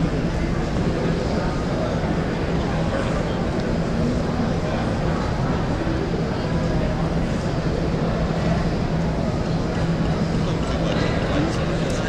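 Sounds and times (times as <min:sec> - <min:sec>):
large hall room rumble: 0:00.0 - 0:12.0.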